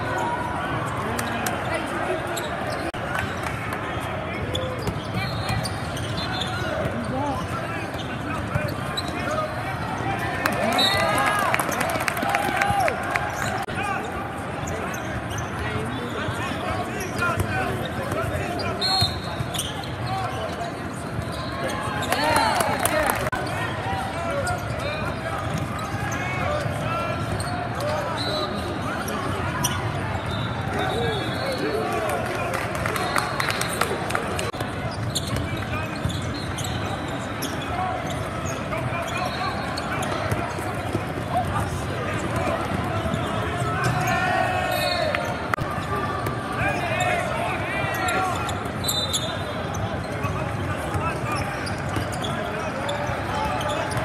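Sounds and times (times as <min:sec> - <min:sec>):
spectators chattering: 0:00.0 - 0:54.0
sneakers squeaking: 0:00.8 - 0:32.0, 0:32.8 - 0:54.0.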